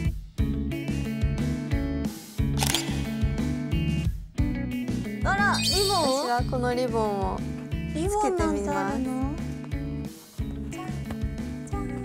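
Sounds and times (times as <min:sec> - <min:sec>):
background music: 0:00.0 - 0:12.0
camera shutter sound effect: 0:02.6 - 0:03.4.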